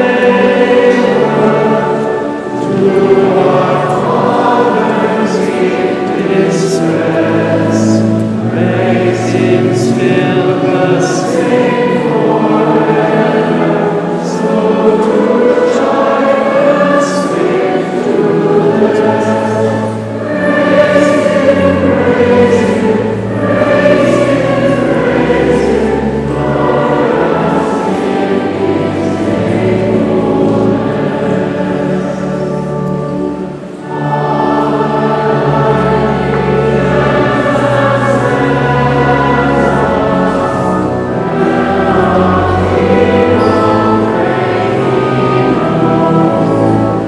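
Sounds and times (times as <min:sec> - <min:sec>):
choir singing a hymn: 0:00.0 - 0:47.0.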